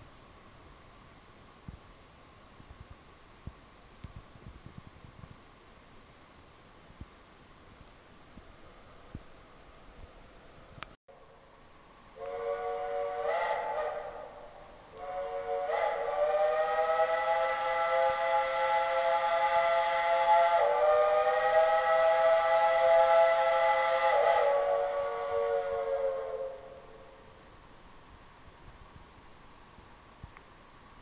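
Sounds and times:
steam locomotive whistle: 11.2s - 28.9s.

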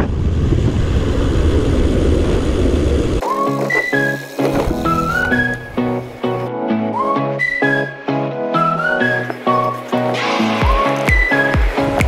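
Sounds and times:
low wind rumble on microphone: 0.0s - 3.2s
music with whistled tune: 3.2s - 12.0s.

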